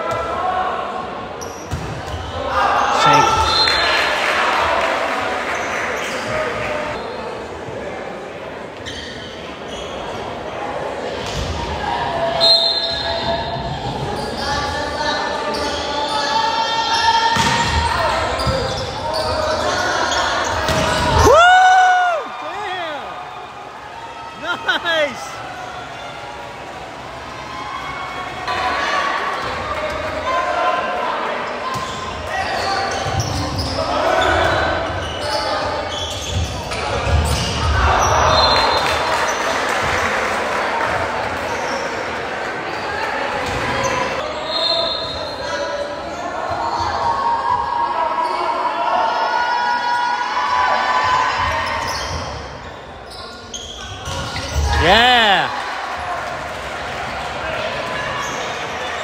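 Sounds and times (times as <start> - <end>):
crowd noise: 0.0 - 59.0
loud shout: 2.4 - 4.8, 21.0 - 23.2, 24.0 - 25.4, 54.6 - 55.9
echoing voices: 2.9 - 3.5, 54.8 - 55.6
sneakers squeaking on hardwood: 17.4 - 21.2, 31.7 - 37.7, 51.6 - 54.8.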